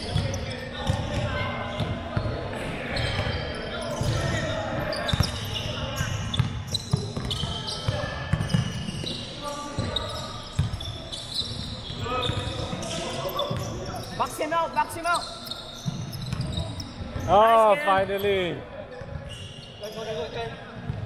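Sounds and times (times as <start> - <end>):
sneakers squeaking: 0.0 - 21.0.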